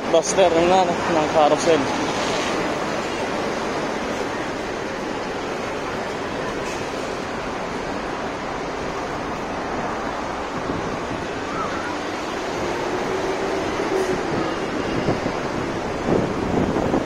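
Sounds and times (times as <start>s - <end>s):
road traffic passing: 0.0s - 17.0s
wind on microphone: 9.2s - 17.0s.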